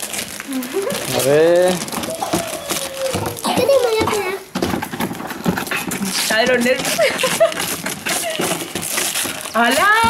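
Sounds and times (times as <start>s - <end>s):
wrapping paper crinkling: 0.0s - 10.0s.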